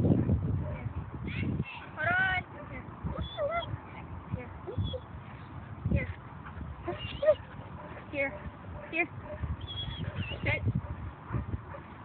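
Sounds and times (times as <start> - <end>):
dog whining: 3.2 - 3.7, 6.9 - 7.5, 9.6 - 10.4.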